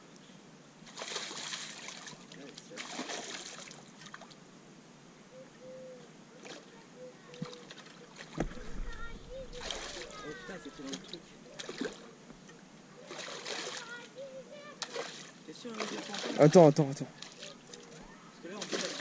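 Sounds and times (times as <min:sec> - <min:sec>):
fish splashing in water: 0:00.9 - 0:04.4, 0:07.3 - 0:12.2, 0:13.0 - 0:14.0, 0:14.8 - 0:16.6, 0:17.2 - 0:19.0.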